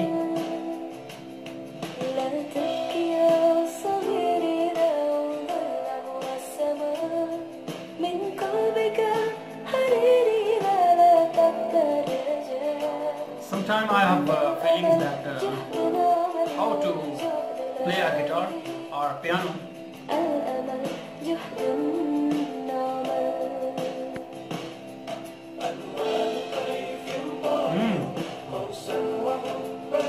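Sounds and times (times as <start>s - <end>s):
woman singing: 0.0s - 1.1s, 1.9s - 19.0s, 20.0s - 24.5s.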